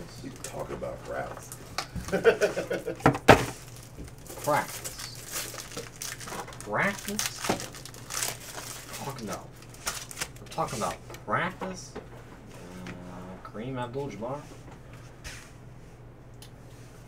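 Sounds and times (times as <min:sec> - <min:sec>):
foil wrapper tearing and crinkling: 0:03.5 - 0:10.6.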